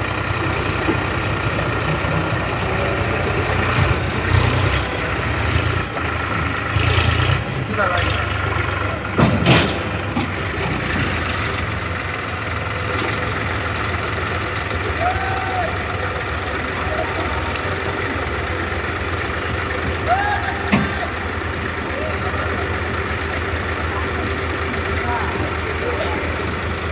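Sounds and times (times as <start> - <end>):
diesel tractor engines idling: 0.0 - 26.9.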